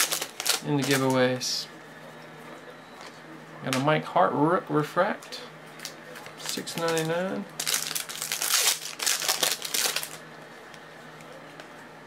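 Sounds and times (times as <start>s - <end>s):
foil wrapper crinkling: 0.0s - 1.2s, 5.8s - 10.2s.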